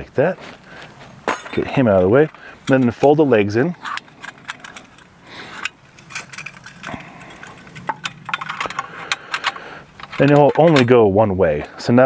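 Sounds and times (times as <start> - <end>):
metallic clicks of camp stove legs: 1.3 - 11.0.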